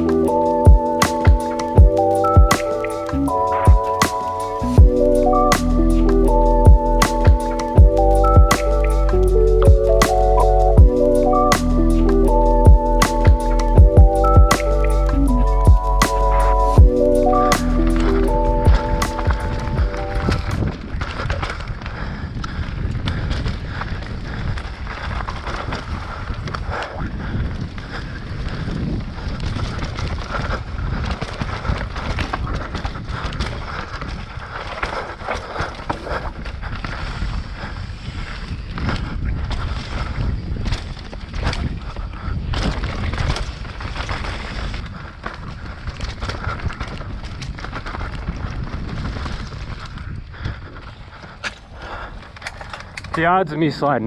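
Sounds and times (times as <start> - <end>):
wind rushing over microphone: 0.0 - 54.0
bike rattling and clicking: 12.3 - 54.0
knobby tyres rumbling on dirt: 13.6 - 54.0.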